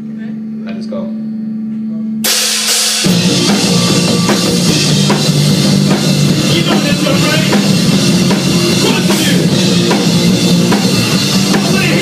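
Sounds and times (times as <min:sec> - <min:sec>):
drums and cymbals crashing: 0:02.2 - 0:12.0
punk rock band playing: 0:02.2 - 0:12.0.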